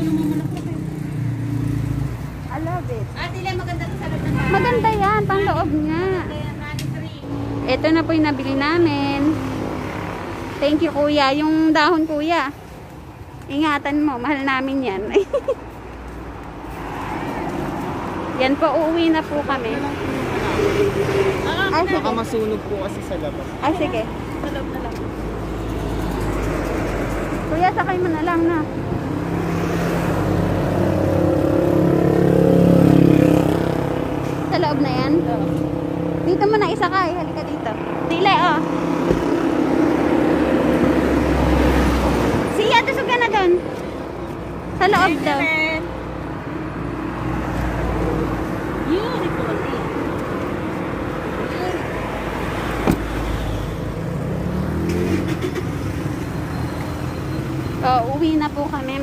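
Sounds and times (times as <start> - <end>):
vehicle engine humming: 0.0 - 59.0.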